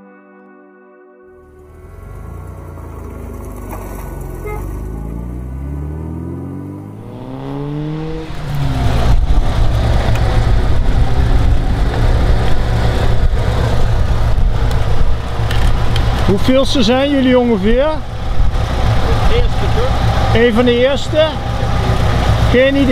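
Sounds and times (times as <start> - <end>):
car engine rumbling: 1.4 - 22.9
sports car engine revving: 1.5 - 22.9.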